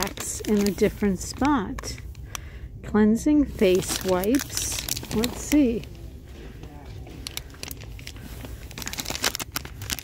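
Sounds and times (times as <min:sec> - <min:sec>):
plastic wrapper crinkling: 0:00.0 - 0:02.3, 0:03.5 - 0:06.0, 0:07.2 - 0:10.0.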